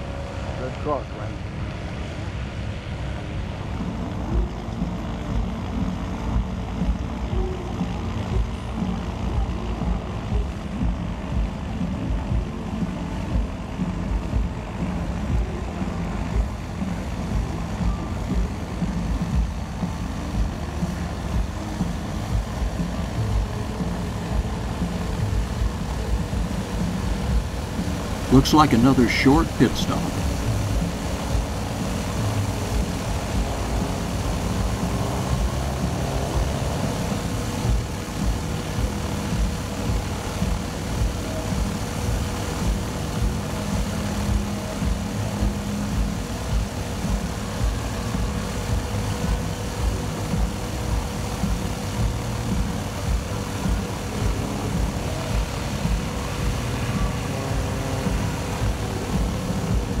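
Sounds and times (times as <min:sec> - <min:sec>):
aircraft engine idling: 0:00.0 - 1:00.0
background music: 0:00.0 - 1:00.0.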